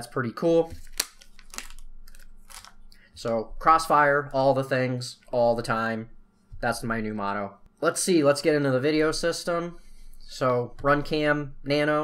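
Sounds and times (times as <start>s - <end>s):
plastic bag crinkling: 0.7s - 3.0s.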